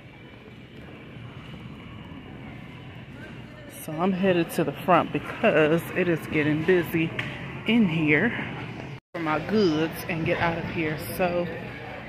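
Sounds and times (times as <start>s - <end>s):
busy store background noise: 0.0s - 12.0s.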